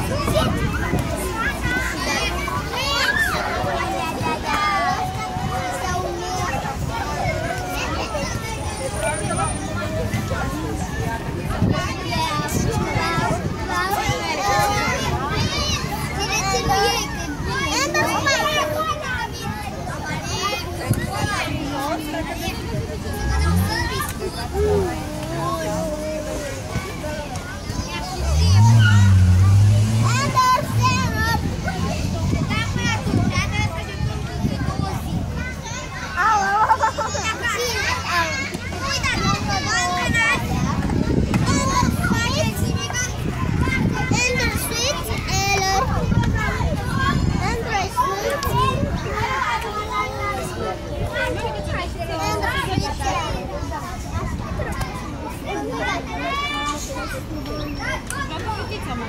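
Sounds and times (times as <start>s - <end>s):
children chattering and calling: 0.0s - 59.0s
young children babbling: 24.3s - 27.2s.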